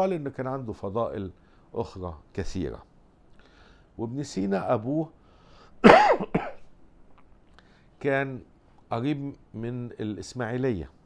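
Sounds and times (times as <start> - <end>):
loud sharp cough: 5.8 - 6.7.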